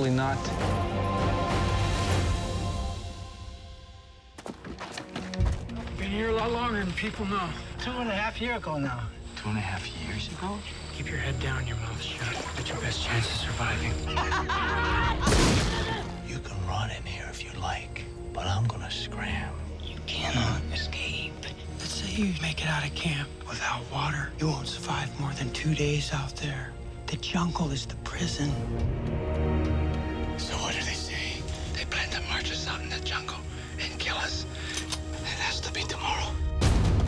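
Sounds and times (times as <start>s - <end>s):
low music drone: 5.8s - 37.0s.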